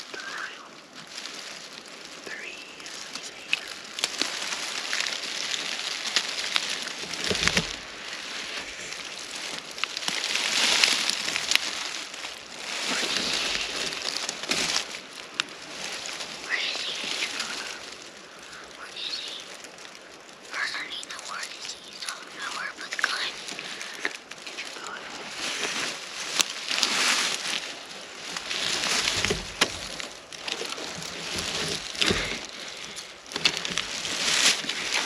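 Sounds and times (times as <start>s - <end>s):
hushed whispering: 0.0s - 0.8s, 2.2s - 4.0s, 12.8s - 13.9s, 16.4s - 19.6s, 20.4s - 25.9s
rustling: 0.0s - 35.0s
soft low bumps: 23.1s - 35.0s.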